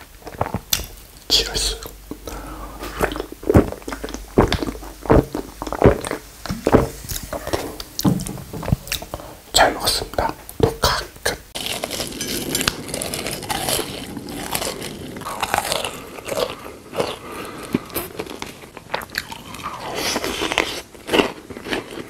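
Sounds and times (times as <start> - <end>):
crisp crunching and chewing: 0.0 - 8.0, 11.5 - 22.0.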